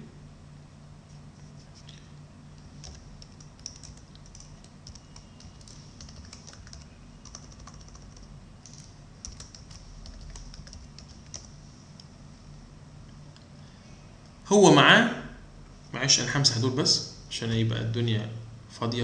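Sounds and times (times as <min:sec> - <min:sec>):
faint low hum: 0:00.0 - 0:19.0
computer keyboard typing: 0:02.6 - 0:11.5.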